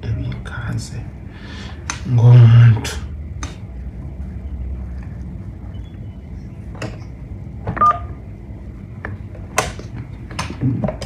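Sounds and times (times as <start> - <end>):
low steady hum: 0.0 - 11.0
telephone keypad tone: 7.8 - 8.2.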